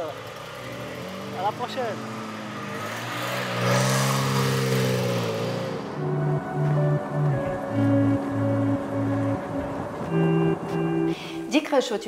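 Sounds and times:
sports car engine driving off: 0.0 - 11.5.

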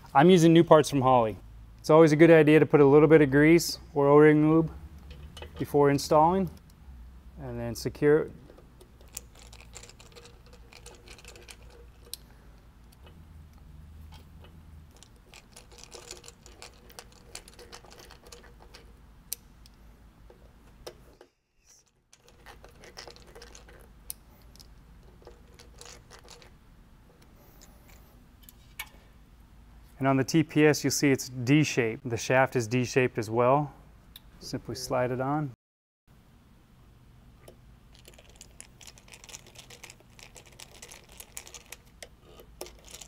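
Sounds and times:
low steady hum: 0.0 - 35.5.

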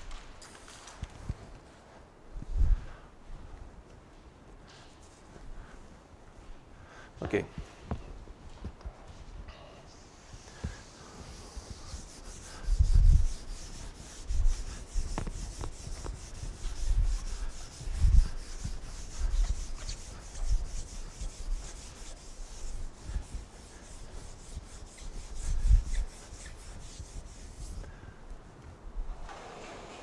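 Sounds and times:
eraser scrubbing chalkboard: 10.2 - 27.8.

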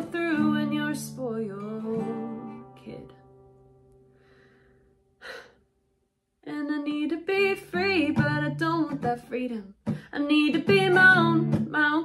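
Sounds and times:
person breathing in sharply: 4.1 - 5.6.

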